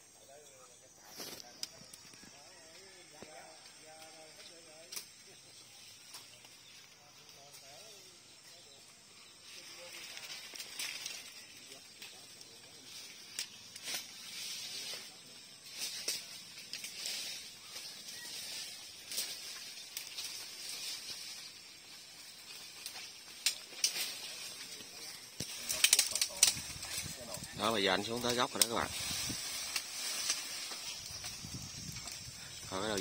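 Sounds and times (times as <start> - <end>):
leaves and twigs rustling: 0.1 - 33.0
twigs snapping: 10.0 - 12.2, 19.0 - 21.3, 22.5 - 27.5, 28.2 - 32.4.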